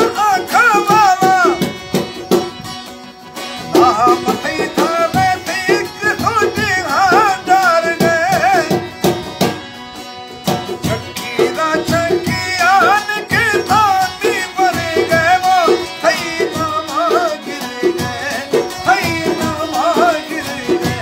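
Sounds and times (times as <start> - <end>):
man singing with vibrato: 0.0 - 21.0
strummed lute strokes: 0.0 - 21.0.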